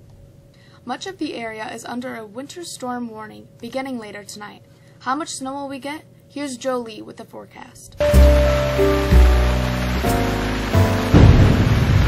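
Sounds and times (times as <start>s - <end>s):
sustained music chords: 8.0s - 12.0s
dense rushing noise: 8.1s - 12.0s
loud rumbling crash: 8.1s - 12.0s.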